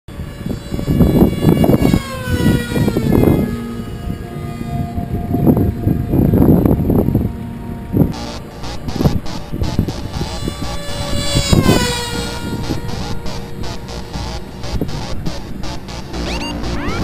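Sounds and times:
model aircraft motor fly-by: 0.1 - 7.2, 7.8 - 16.2
wind buffeting microphone: 0.1 - 16.2.

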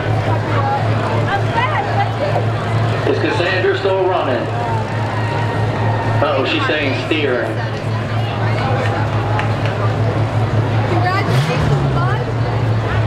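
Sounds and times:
cars idling in low rumble: 0.0 - 13.0
voices talking: 0.0 - 13.0.

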